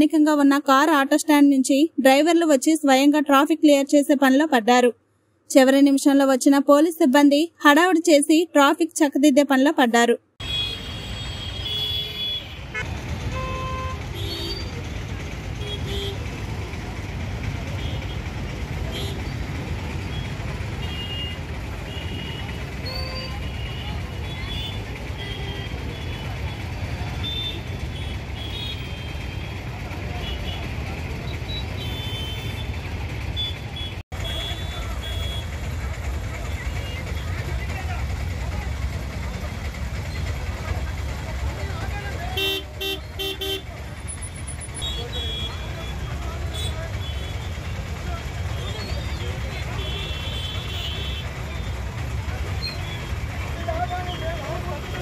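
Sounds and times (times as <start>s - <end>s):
idling and creeping engines: 10.4s - 55.0s.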